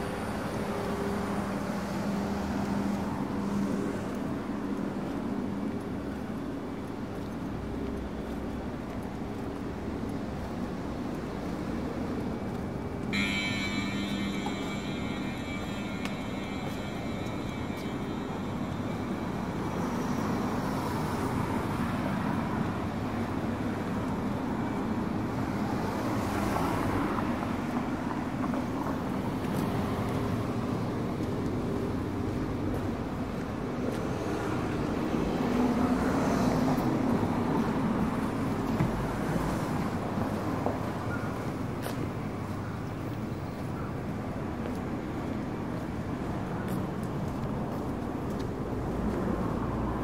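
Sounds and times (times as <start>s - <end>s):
cars passing: 0.0s - 43.4s, 44.2s - 50.0s.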